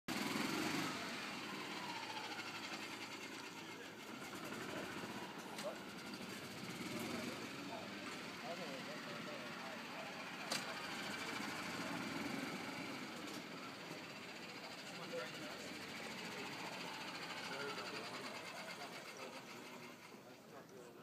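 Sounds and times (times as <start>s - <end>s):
outdoor background: 0.0s - 21.0s.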